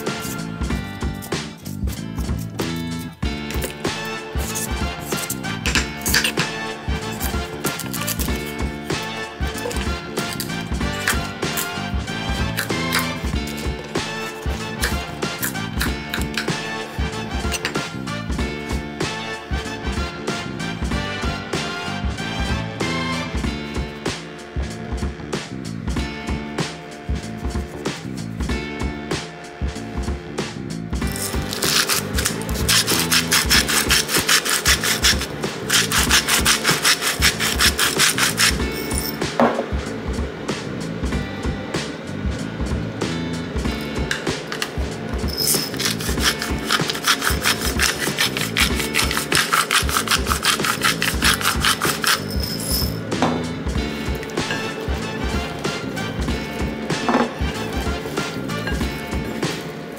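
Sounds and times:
pepper mill grinding: 0.0s - 18.0s, 31.0s - 39.2s, 43.7s - 53.0s, 54.0s - 59.9s
background music: 0.0s - 59.9s.

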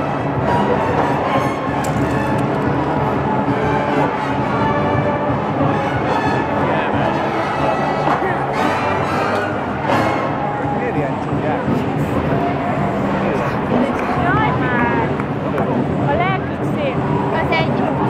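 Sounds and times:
brass horns: 0.0s - 10.7s
marching drums: 0.0s - 18.0s.

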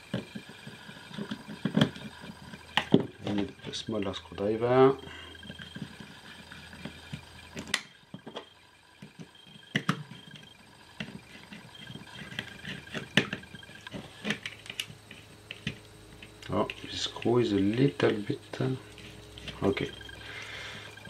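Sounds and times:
small plastic parts clicking: 11.0s - 17.3s.

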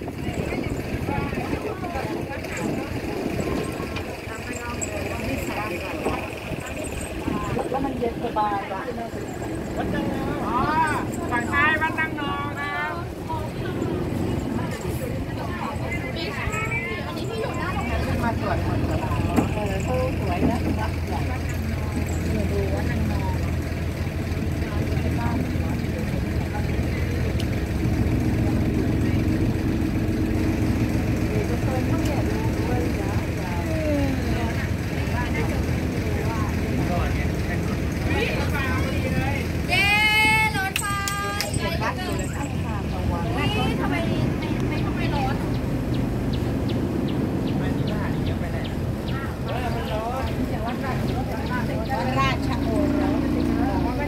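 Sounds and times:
boat engine running: 0.0s - 54.0s
people's voices: 0.0s - 54.0s.

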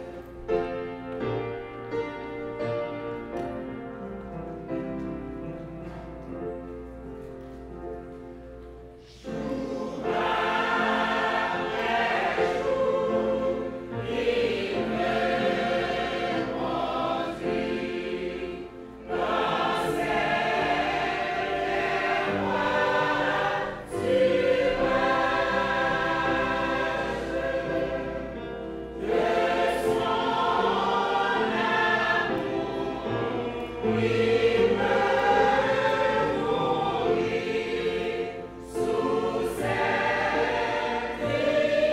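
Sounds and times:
church choir singing: 0.0s - 41.9s.

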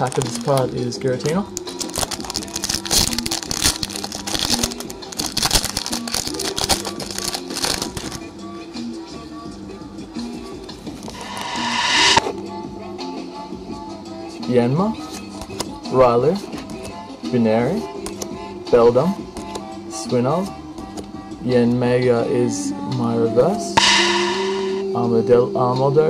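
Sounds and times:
foil wrapper crinkling and tearing: 0.0s - 0.6s, 1.5s - 8.2s
background music: 0.0s - 26.0s
rising rush of noise: 11.1s - 12.3s, 23.8s - 24.8s.

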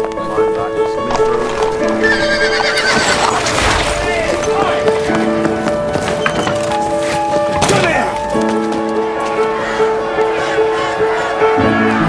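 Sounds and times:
hooves clip-clopping: 0.0s - 9.6s
orchestral music: 0.0s - 12.0s
horse whinnying: 2.0s - 3.5s.

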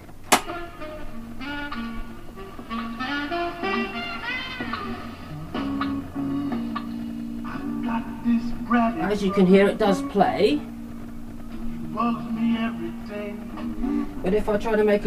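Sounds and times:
music from tape recorder speaker: 0.0s - 15.0s
tape recorder lever click: 0.2s - 0.5s.

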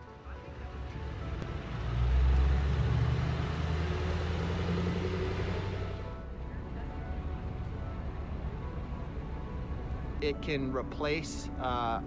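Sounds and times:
faint background music: 0.0s - 12.0s
truck engine low rumble: 0.0s - 12.0s.

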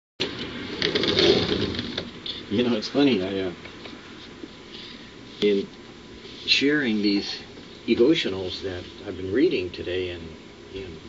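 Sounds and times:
rustling and knocking of movement: 0.8s - 2.2s.

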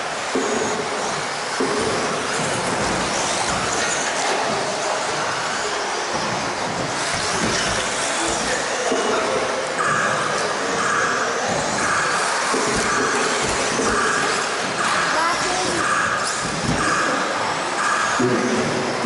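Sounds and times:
rc car motors whining: 0.0s - 9.0s.

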